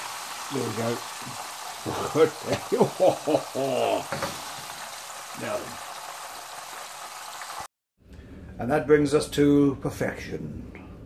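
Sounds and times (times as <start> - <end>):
oil sizzling in frying pan: 0.0 - 7.7.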